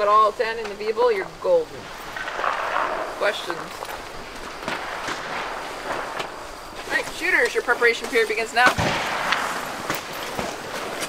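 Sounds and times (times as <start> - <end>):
people talking: 0.0 - 1.8, 3.2 - 3.8, 6.8 - 8.9
outdoor background noise: 0.0 - 11.0.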